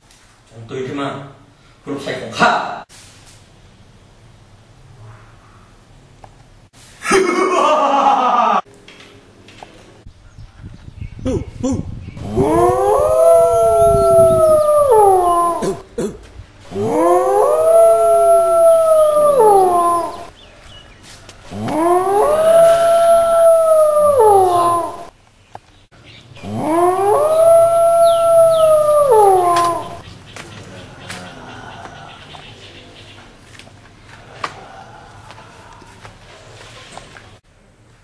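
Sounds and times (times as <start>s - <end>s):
wolf-like howls: 12.2s - 15.8s, 16.7s - 20.3s, 21.4s - 25.1s, 26.4s - 30.0s.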